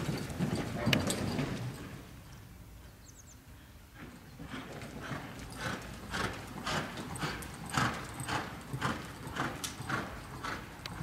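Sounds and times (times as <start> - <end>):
horse hoofbeats on dirt: 0.0 - 2.1, 3.9 - 11.0.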